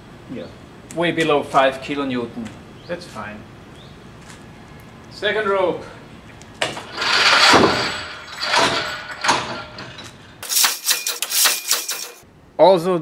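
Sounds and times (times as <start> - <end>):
clicks and rattles: 6.6 - 12.2
steel mass rushing down: 10.4 - 12.2.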